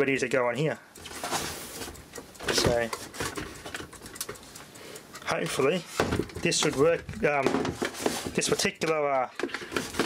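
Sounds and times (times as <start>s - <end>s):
clicks and rustles of handling: 0.9s - 10.0s.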